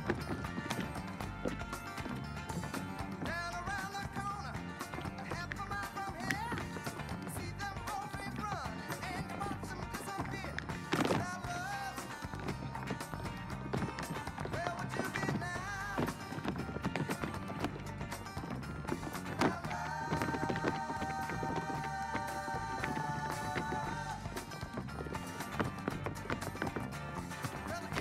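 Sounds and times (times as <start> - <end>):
tap shoes clattering on stage: 0.0 - 28.0
recorded song with singing: 2.6 - 28.0.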